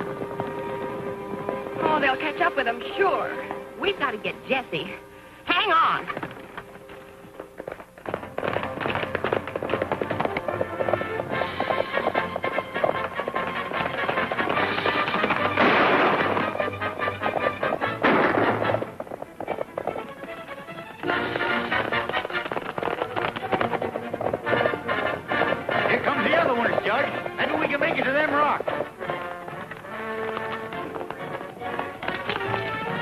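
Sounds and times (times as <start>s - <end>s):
galloping horses' hooves: 0.0s - 33.0s
dramatic orchestral music: 10.0s - 33.0s.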